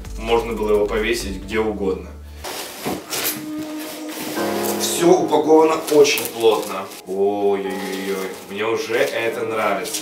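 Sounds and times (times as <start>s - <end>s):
quiet background music: 0.0s - 10.0s
packaging rustling: 2.5s - 4.9s, 5.7s - 10.0s.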